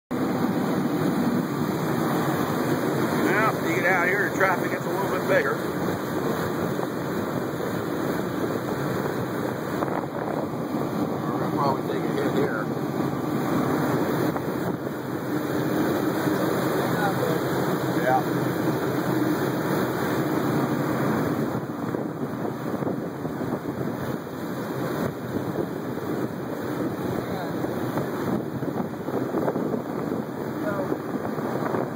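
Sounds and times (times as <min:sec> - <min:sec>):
boat engine running: 0:00.1 - 0:31.9
wind and water rushing: 0:00.1 - 0:31.9
man speaking: 0:03.2 - 0:05.6, 0:11.4 - 0:12.7.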